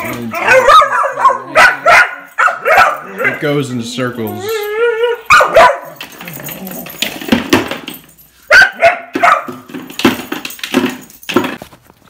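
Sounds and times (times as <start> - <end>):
dog barking: 0.3 - 3.4, 5.2 - 6.0, 8.5 - 9.7.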